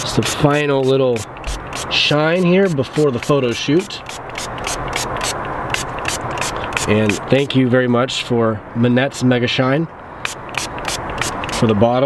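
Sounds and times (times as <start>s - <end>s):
spray bottle hissing sprays: 0.0s - 7.2s, 10.2s - 11.7s.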